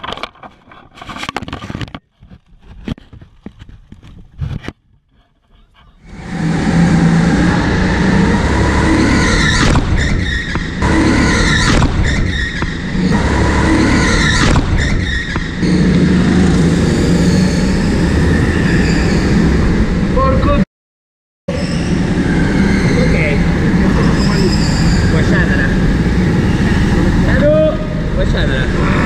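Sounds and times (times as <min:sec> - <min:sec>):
go-kart engine revving: 0:06.1 - 0:18.8, 0:21.9 - 0:29.0.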